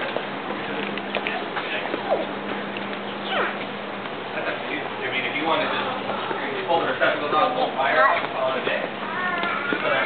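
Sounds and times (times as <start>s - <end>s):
child squealing: 3.2s - 3.6s, 9.0s - 10.0s.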